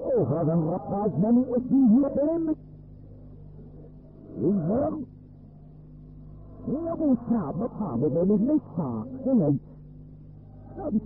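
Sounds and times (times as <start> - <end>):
tape hum and hiss: 0.0 - 11.0.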